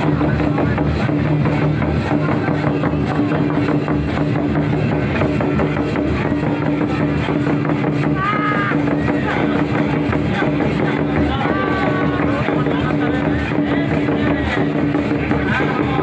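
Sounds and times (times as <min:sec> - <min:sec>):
crowd voices: 0:00.0 - 0:16.0
hand-beaten barrel drums: 0:00.0 - 0:16.0.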